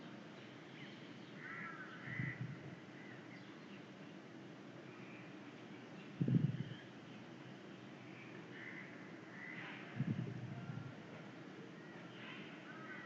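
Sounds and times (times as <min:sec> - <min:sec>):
faint bird calls: 0:00.8 - 0:03.8, 0:06.2 - 0:11.0, 0:11.6 - 0:13.0.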